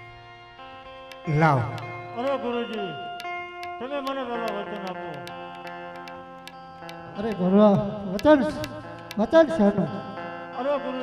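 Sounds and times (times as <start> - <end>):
light ticking beat: 0.0 - 10.3
harmonium chord: 0.0 - 11.0.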